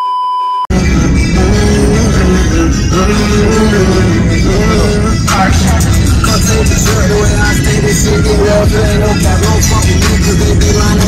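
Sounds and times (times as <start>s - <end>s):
electronic test-tone beep: 0.0s - 0.7s
music: 0.7s - 11.0s.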